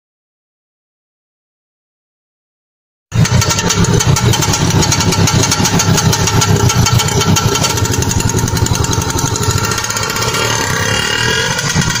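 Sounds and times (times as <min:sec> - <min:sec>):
auto rickshaw engine puttering: 0:03.1 - 0:12.0.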